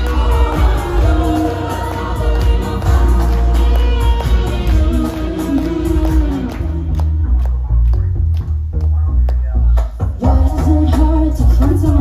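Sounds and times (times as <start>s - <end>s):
electric guitar: 0.0s - 8.0s
heavy bass: 0.0s - 12.0s
steady drum beat: 0.0s - 12.0s.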